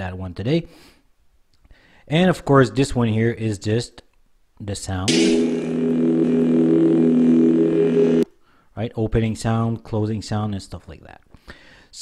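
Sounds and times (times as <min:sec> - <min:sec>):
lightsaber switching on: 0:05.1 - 0:08.2
low electric hum: 0:05.1 - 0:08.2.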